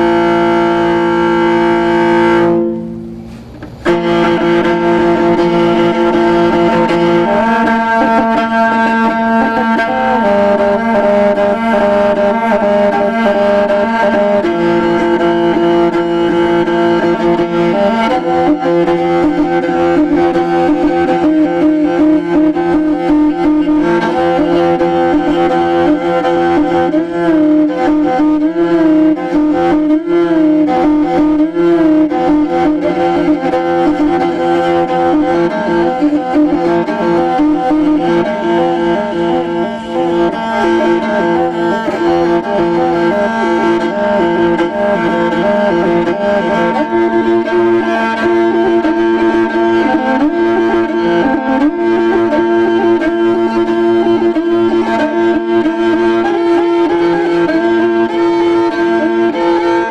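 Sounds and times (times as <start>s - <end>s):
bowed fiddle melody over drone: 0.0s - 3.2s, 3.8s - 59.9s.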